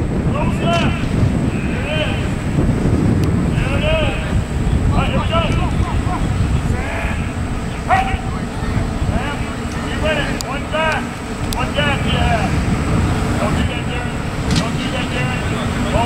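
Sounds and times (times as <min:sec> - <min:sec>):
steady low rumble: 0:00.0 - 0:16.0
distant people shouting: 0:00.3 - 0:02.6, 0:03.5 - 0:16.0.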